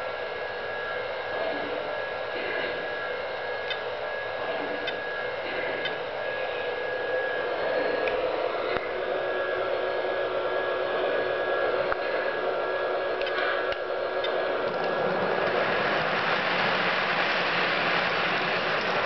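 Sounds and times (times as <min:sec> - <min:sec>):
model train motor whine: 0:13.2 - 0:19.0
wheels rumbling on rails: 0:14.7 - 0:19.0.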